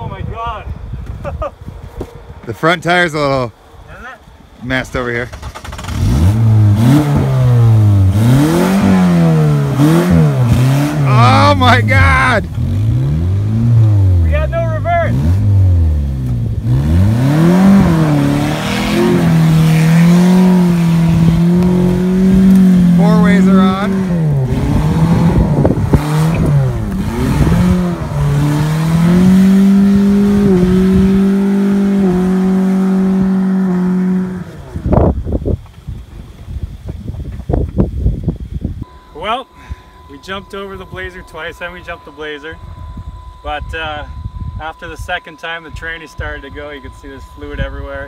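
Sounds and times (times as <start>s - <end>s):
car engine revving hard: 5.4s - 14.3s, 15.1s - 35.0s.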